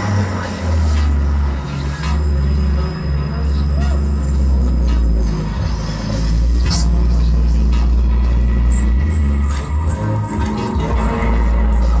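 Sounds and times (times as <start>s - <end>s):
low electronic drone: 0.0s - 12.0s.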